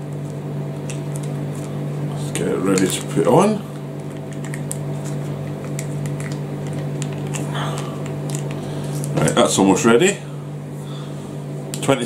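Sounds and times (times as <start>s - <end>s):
microwave oven humming: 0.0s - 12.0s.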